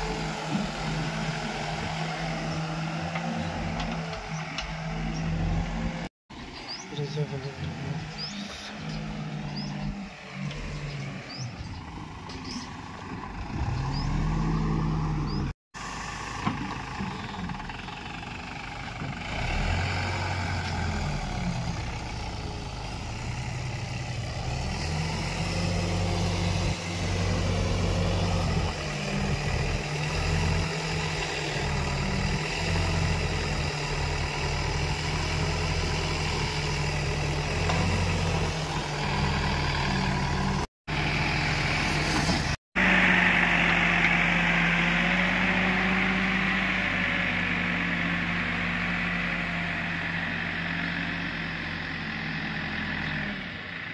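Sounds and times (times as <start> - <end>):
diesel engine running: 0.0 - 53.9.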